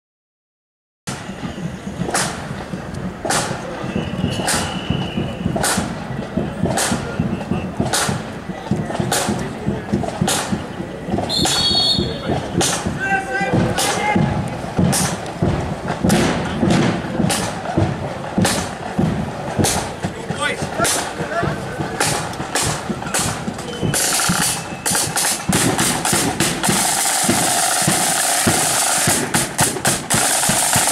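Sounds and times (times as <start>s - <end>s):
murmur of voices: 1.1s - 30.9s
slow steady drum beat: 1.1s - 30.9s.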